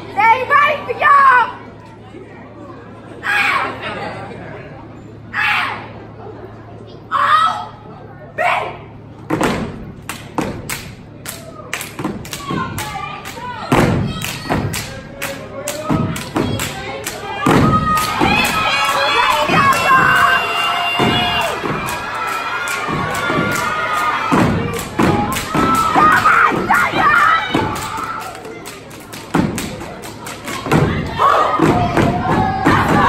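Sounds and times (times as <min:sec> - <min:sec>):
voices shouting and cheering: 0:00.0 - 0:04.5, 0:05.2 - 0:09.1, 0:11.1 - 0:33.0
people clapping: 0:10.0 - 0:33.0
stomping on wooden stage: 0:17.4 - 0:18.6, 0:20.8 - 0:22.1, 0:24.3 - 0:28.0, 0:29.3 - 0:29.9, 0:30.6 - 0:33.0.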